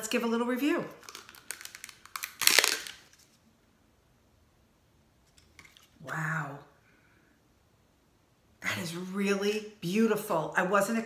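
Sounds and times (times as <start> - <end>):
plastic crackle: 0.9 - 3.4.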